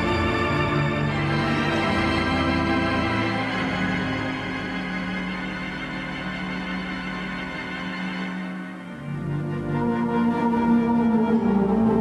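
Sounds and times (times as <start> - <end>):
pipe organ playing slow ballad: 0.0 - 12.0.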